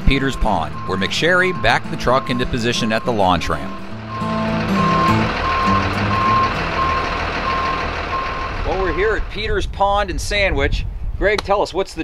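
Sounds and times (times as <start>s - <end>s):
truck backup alarm beeping: 0.0s - 9.4s
low engine rumble: 0.0s - 10.6s.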